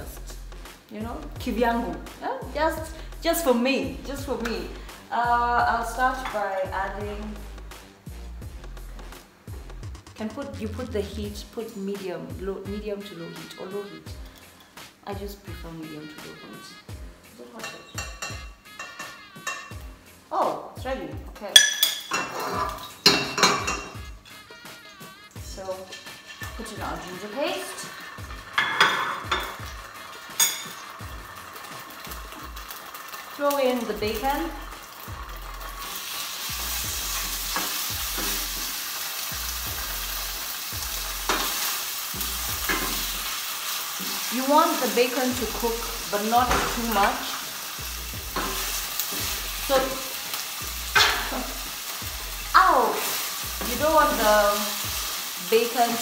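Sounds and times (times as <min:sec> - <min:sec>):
background music: 0:00.0 - 0:56.0
metal spoon clinking on pan: 0:17.6 - 0:19.8, 0:21.6 - 0:24.0, 0:25.8 - 0:26.7, 0:27.9 - 0:29.6, 0:30.2 - 0:31.0
spatula scraping and knocking pot: 0:17.6 - 0:19.8, 0:25.7 - 0:30.9, 0:42.6 - 0:43.1, 0:45.5 - 0:47.4, 0:48.2 - 0:50.0
bacon sizzling in oil: 0:21.6 - 0:56.0.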